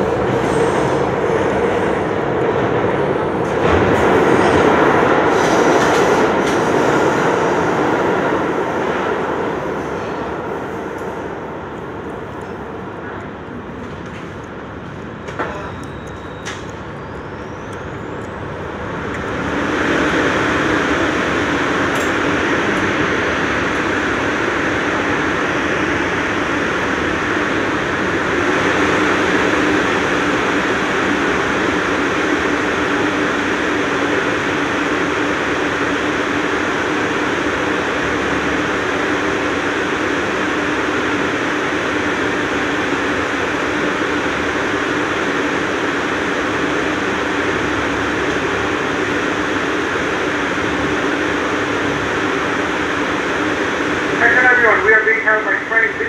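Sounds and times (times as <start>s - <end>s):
subway car hum and hiss: 0.0s - 56.0s.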